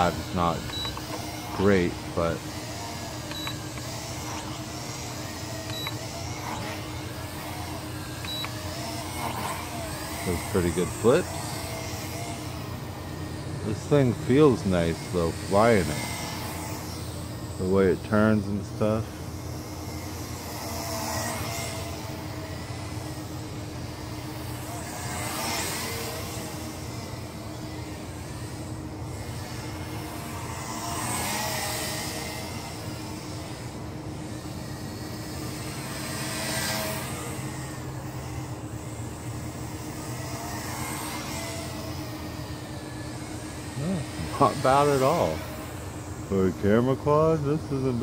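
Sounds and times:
quadcopter propellers buzzing: 0.0s - 48.0s.

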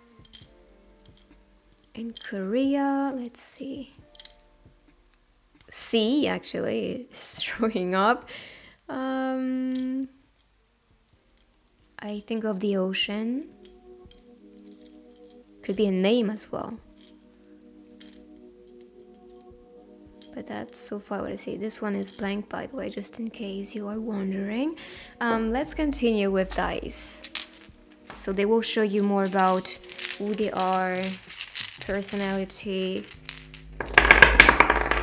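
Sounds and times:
soft background music: 0.0s - 35.0s
dice clattering onto table: 4.1s - 4.4s, 18.0s - 18.4s, 25.4s - 35.0s
letter tiles clacking on a plate: 25.4s - 35.0s.

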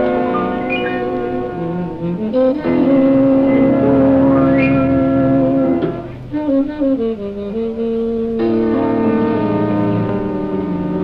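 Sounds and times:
jazz quintet playing: 0.0s - 11.0s.

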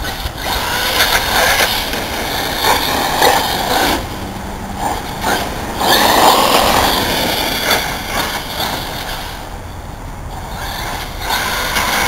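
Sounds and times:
electric motor whine: 0.0s - 9.6s
tyres on asphalt: 0.0s - 12.0s.

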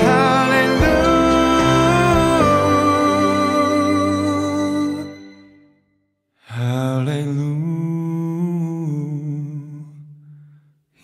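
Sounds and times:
man singing long note: 0.0s - 5.2s.

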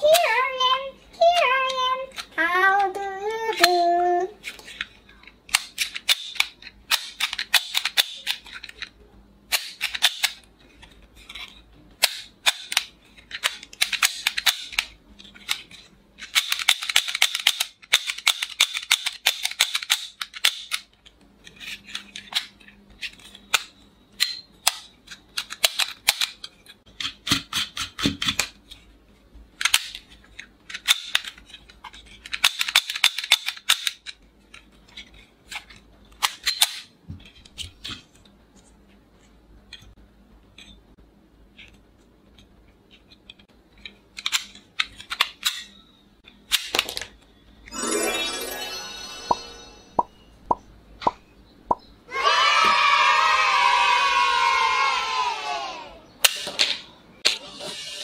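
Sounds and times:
toy revolver plastic clicks: 5.5s - 8.9s, 9.5s - 10.4s, 12.0s - 15.6s, 16.2s - 21.0s, 23.2s - 28.6s, 32.2s - 34.2s.

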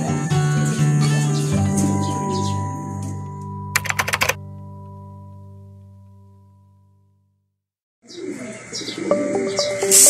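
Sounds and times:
sharp clicks: 3.8s - 4.4s.

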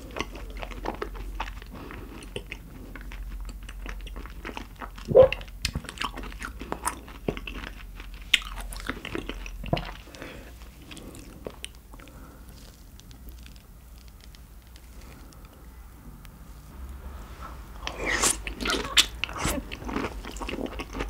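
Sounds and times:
wet chewing: 0.0s - 15.6s, 17.8s - 21.0s.

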